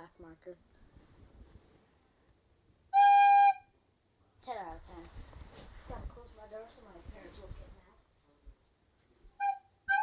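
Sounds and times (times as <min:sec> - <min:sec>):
faint rustling: 0:00.6 - 0:02.4, 0:04.4 - 0:09.2
recorder playing high note: 0:09.4 - 0:10.0.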